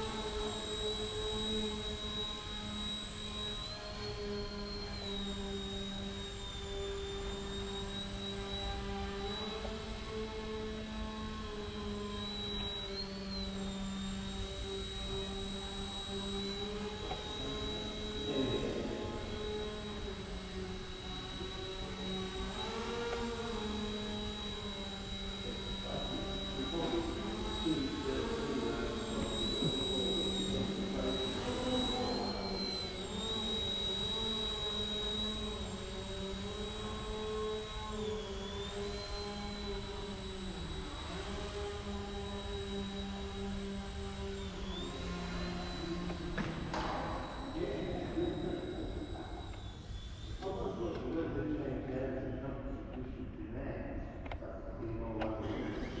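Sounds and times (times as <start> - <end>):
toy helicopter rotor whine: 0.0 - 53.4, 55.0 - 56.0.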